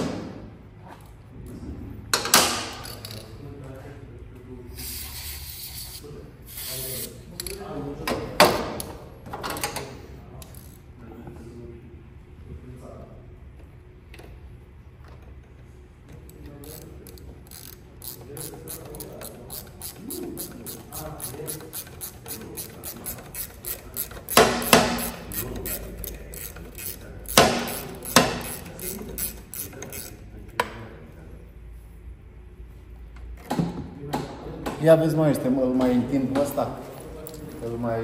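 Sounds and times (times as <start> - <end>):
ratchet clicking: 16.2 - 30.2.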